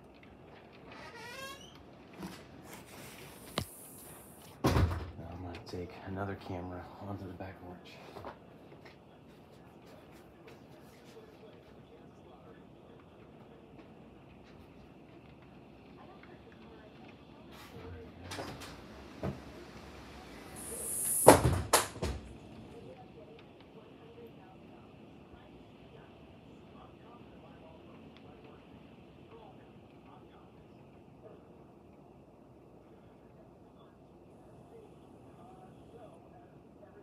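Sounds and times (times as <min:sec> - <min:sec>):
outdoor background noise: 0:00.0 - 0:37.0
door hiss: 0:03.2 - 0:04.9, 0:18.4 - 0:22.2.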